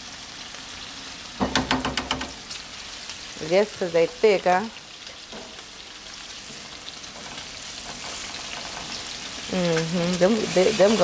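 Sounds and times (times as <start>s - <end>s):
burger patties sizzling: 0.0s - 11.0s.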